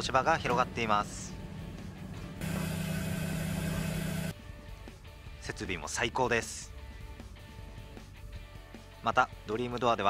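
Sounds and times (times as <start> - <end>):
pitching machine motor hum: 0.4 - 4.4.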